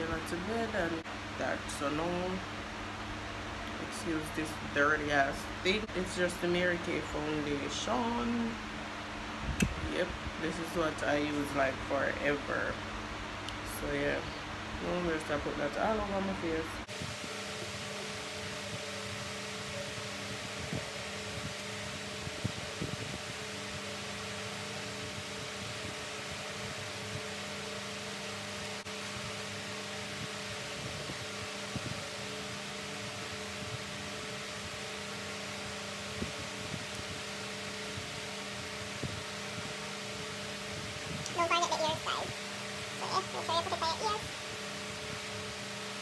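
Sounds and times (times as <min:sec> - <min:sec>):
electric fan whirring: 0:00.0 - 0:46.0.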